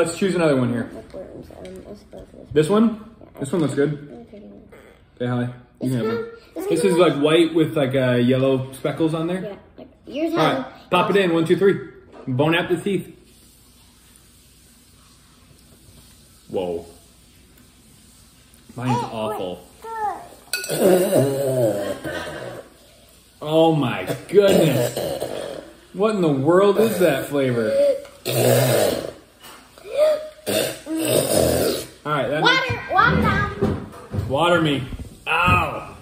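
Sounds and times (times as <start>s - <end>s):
faint steady hiss: 0.0s - 33.0s
person gagging coughs: 24.1s - 25.6s.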